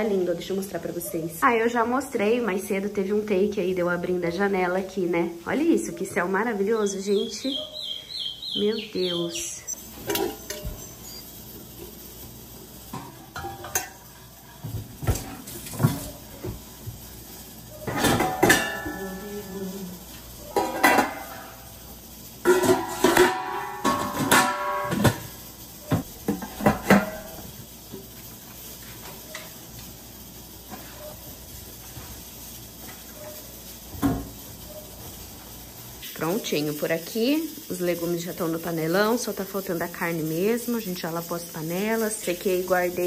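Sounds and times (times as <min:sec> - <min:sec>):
steel pots clanking: 0:09.8 - 0:43.0.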